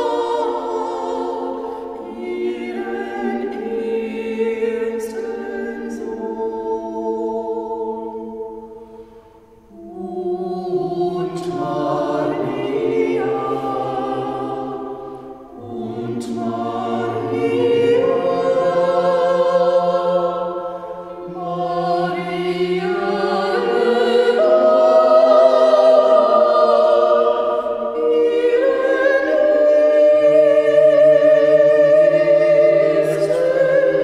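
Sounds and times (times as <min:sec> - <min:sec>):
group of voices singing: 0:00.0 - 0:34.0.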